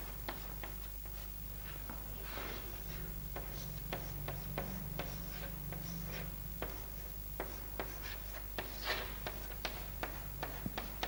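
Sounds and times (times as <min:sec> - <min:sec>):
chalk scratching on blackboard: 0:02.3 - 0:11.0
chalk tapping on blackboard: 0:03.3 - 0:11.0.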